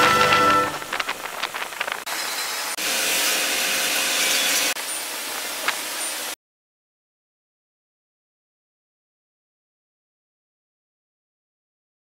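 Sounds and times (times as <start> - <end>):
steady rushing noise: 0.0 - 3.9
train wheels squealing and scraping: 0.0 - 5.1.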